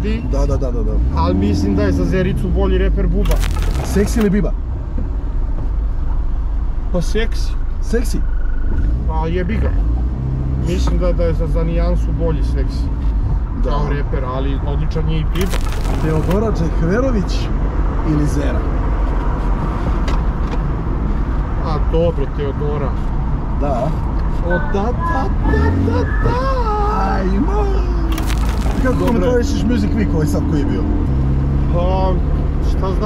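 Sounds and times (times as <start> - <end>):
car engine running: 15.3 - 16.5, 28.1 - 29.7.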